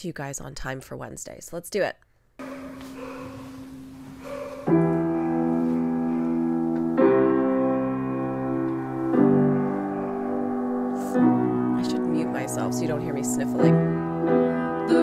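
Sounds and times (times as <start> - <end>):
piano playing slow chords: 2.4 - 15.0.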